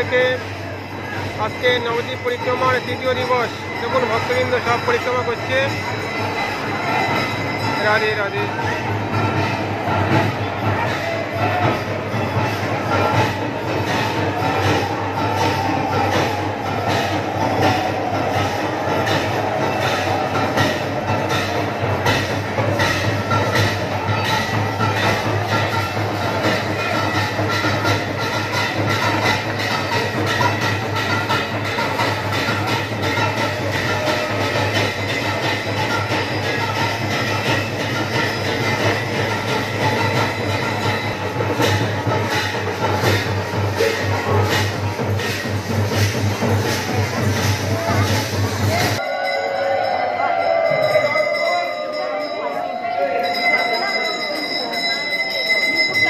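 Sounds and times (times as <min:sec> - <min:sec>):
fast clattering percussion beat: 0:00.0 - 0:56.0.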